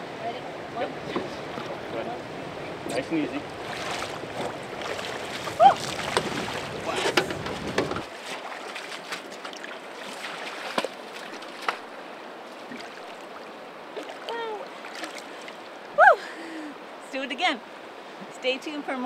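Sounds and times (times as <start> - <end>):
wind rumble on microphone: 0.0 - 8.1
river water washing: 0.0 - 19.0
fish thrashing and splashing: 3.6 - 11.9.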